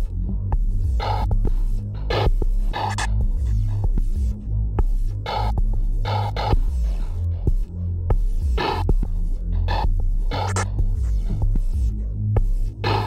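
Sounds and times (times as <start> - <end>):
throbbing bass drone: 0.0 - 13.0.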